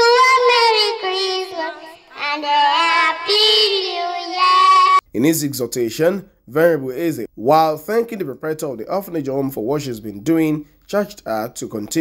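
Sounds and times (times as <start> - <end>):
girls singing into microphones: 0.0 - 5.0.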